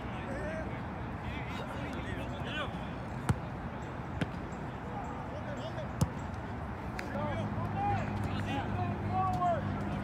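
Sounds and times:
soccer ball kicks: 3.2s - 3.5s, 6.0s - 6.2s.

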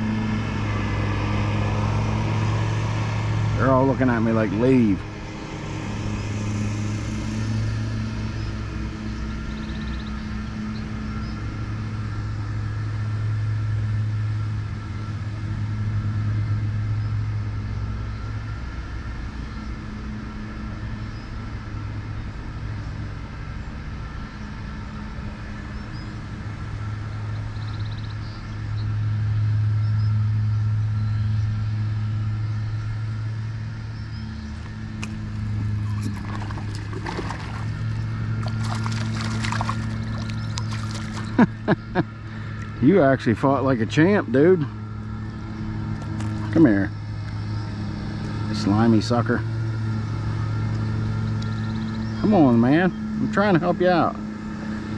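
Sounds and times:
lawn mower engine running: 34.6s - 47.3s.

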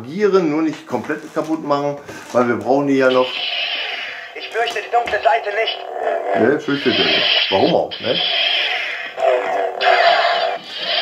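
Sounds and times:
toy speaker electronic music: 3.1s - 11.0s.

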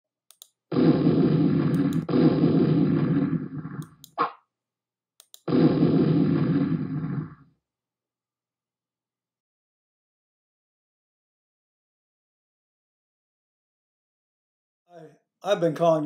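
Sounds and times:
sharp clicks: 0.3s - 0.6s, 1.7s - 2.2s, 5.2s - 5.5s.

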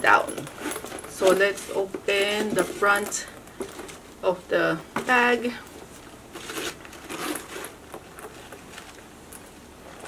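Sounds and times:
bag handling noise: 0.0s - 4.1s, 5.0s - 10.0s
zipper being pulled open: 6.3s - 8.4s.

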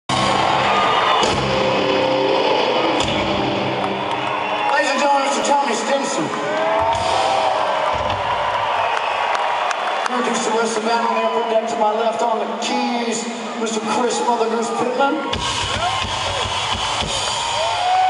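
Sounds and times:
drum hits: 0.1s - 2.0s, 6.8s - 8.4s
live rock band playing: 0.1s - 4.6s, 15.3s - 17.9s
crowd cheering: 0.1s - 18.0s.

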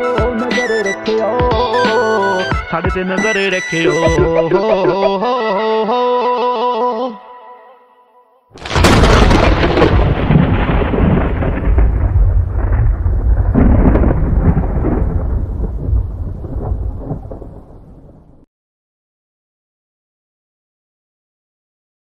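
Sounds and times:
thunder crack and rumble: 8.6s - 18.5s.

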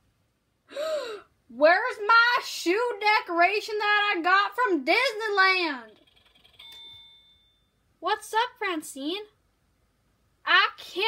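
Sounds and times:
bell-like chime: 6.4s - 7.8s.

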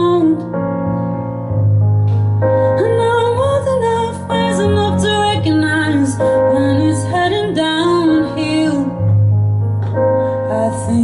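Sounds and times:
instrumental accompaniment: 0.0s - 11.0s
woman singing slow song: 2.7s - 9.3s, 10.4s - 11.0s.

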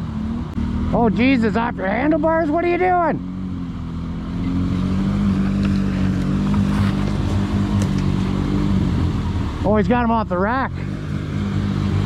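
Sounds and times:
atv engine idling: 0.0s - 11.2s.

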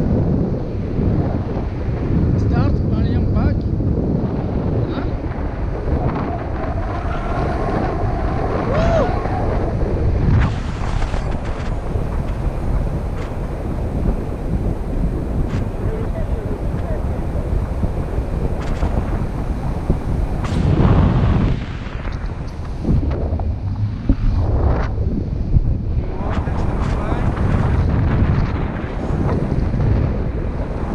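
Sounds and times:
wind buffeting microphone: 0.0s - 30.9s.

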